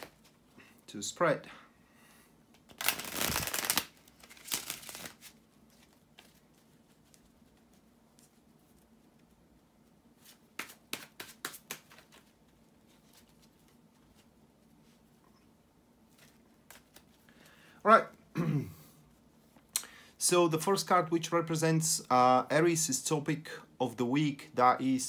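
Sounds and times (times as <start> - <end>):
cards being shuffled: 2.5 - 8.9, 10.2 - 14.3, 16.1 - 17.3.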